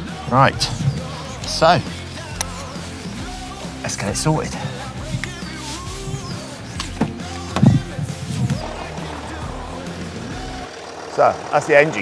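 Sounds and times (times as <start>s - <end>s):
background music: 0.0s - 12.0s
engine starting and idling: 0.0s - 12.0s.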